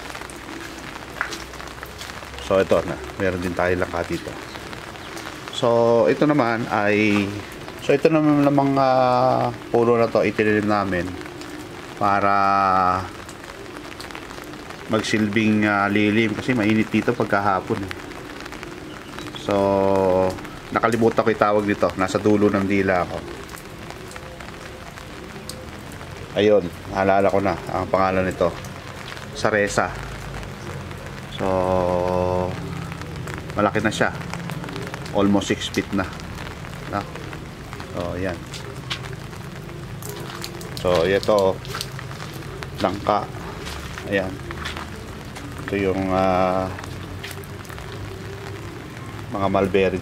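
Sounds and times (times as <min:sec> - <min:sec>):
light rain on foliage: 0:00.0 - 0:50.0
raindrop ticks: 0:00.0 - 0:50.0.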